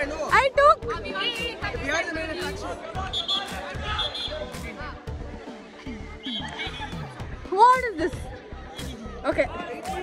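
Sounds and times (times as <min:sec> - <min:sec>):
background music: 0:00.0 - 0:10.0
group chatter: 0:00.0 - 0:10.0.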